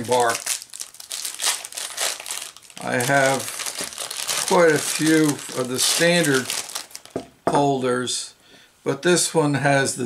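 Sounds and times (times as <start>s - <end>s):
plastic bag crinkling: 0.0s - 7.3s.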